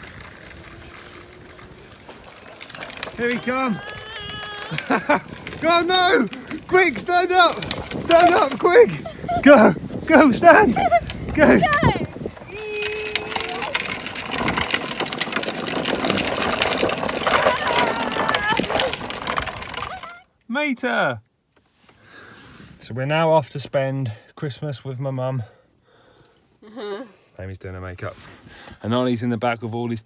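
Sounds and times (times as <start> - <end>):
plastic toy wheels rattling on tarmac: 0.0 - 20.3
wind: 0.0 - 30.0.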